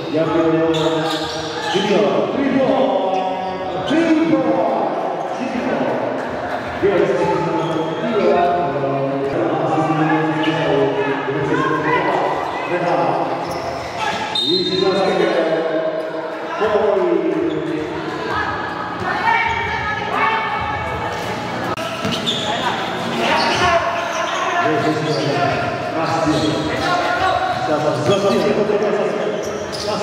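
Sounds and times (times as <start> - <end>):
people calling and shouting: 0.0 - 30.0.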